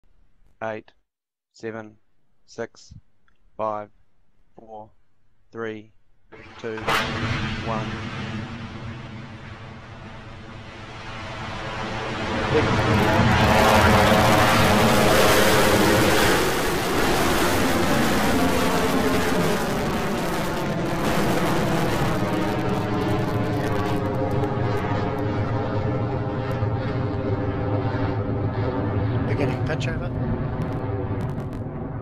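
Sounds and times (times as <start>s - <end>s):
rocket engines rumbling: 6.3s - 32.0s.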